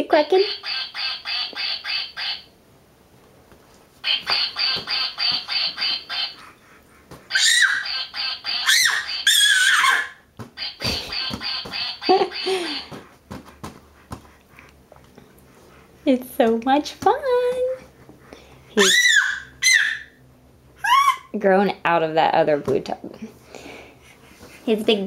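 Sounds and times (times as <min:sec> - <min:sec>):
toy quacker quacking rapidly: 0:00.4 - 0:02.5, 0:04.1 - 0:06.4, 0:07.3 - 0:12.9, 0:18.8 - 0:20.0
baby squealing: 0:07.3 - 0:07.9, 0:08.5 - 0:10.2, 0:18.8 - 0:20.2, 0:20.8 - 0:21.4.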